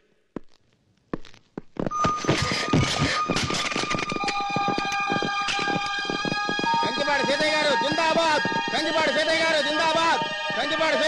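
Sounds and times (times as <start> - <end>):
sustained high tones: 1.9 - 11.0.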